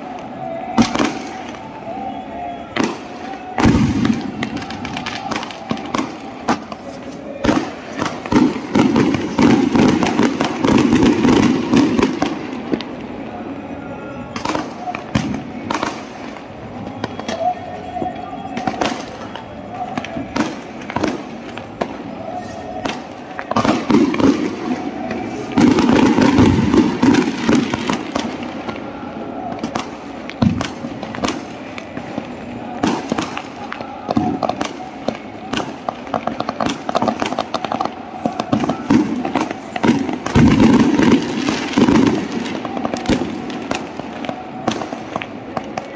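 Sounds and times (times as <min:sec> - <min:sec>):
fireworks bangs and crackles: 0:00.0 - 0:45.9.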